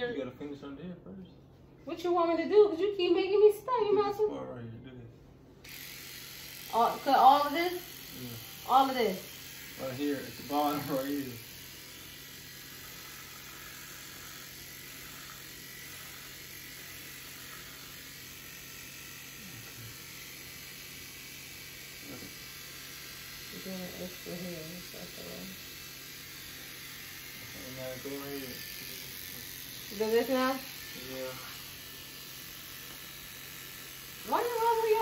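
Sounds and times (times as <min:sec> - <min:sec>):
electric hair clippers humming: 0:05.6 - 0:35.0.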